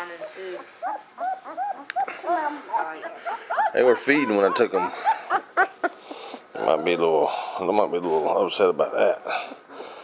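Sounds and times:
puppies whimpering: 0.2s - 8.2s.

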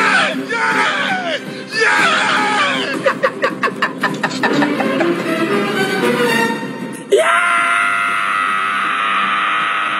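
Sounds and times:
man screaming: 0.0s - 3.2s, 7.1s - 9.9s.

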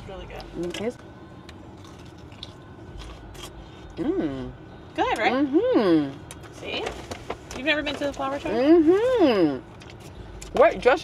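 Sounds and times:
steady low rumble: 0.0s - 11.0s
person chewing salad: 1.4s - 4.2s, 9.6s - 10.5s.

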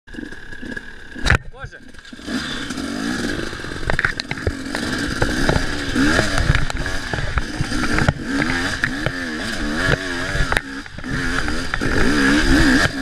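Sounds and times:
dirt bike engine revving: 0.1s - 13.0s.

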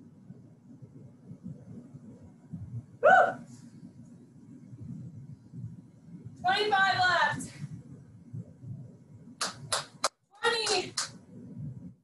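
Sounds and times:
low background rumble: 0.0s - 12.0s
woman yelping: 3.0s - 3.4s.

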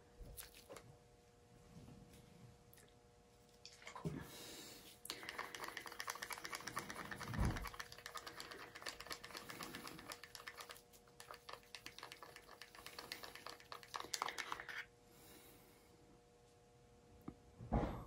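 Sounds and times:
stick stirring paint in plastic cup: 5.0s - 14.9s.

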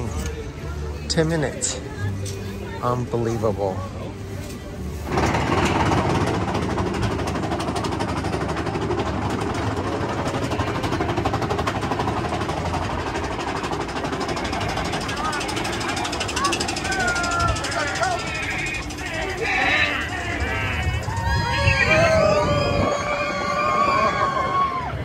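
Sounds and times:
roller coaster rumbling and rattling: 0.0s - 25.0s
riders' voices and squeals: 14.0s - 25.0s.

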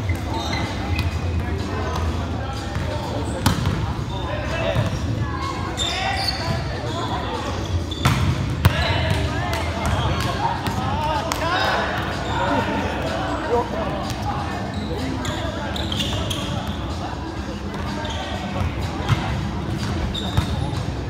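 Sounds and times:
sneakers squeaking on court: 0.0s - 10.8s, 14.0s - 17.0s, 17.7s - 21.0s
players calling and chattering: 0.0s - 21.0s.

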